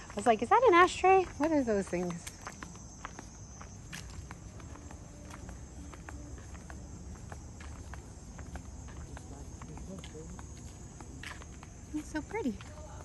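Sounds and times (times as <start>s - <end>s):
footsteps on concrete: 0.0s - 13.0s
night insects chorus: 0.0s - 13.0s.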